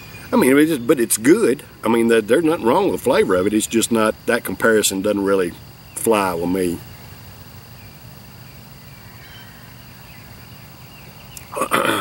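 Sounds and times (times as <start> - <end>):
high-pitched insect drone: 0.0 - 12.0
outdoor background noise: 0.0 - 12.0
man clearing throat: 11.5 - 12.0.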